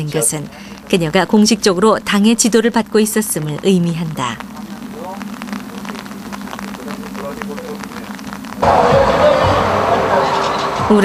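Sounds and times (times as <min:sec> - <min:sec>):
light irregular crackles: 0:00.0 - 0:11.0
low hum: 0:00.0 - 0:11.0.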